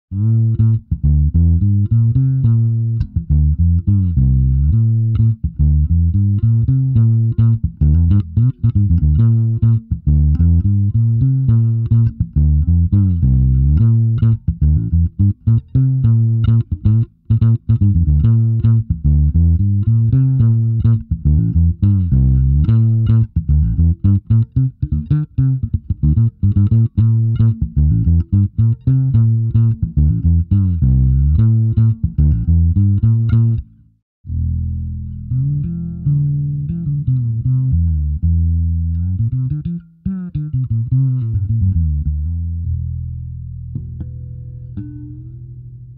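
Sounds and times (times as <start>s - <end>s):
fretless electric bass sliding notes: 0.1s - 45.9s.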